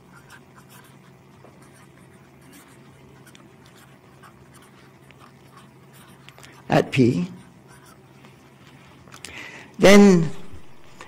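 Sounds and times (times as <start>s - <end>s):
marker scratching on paper: 0.0s - 8.1s.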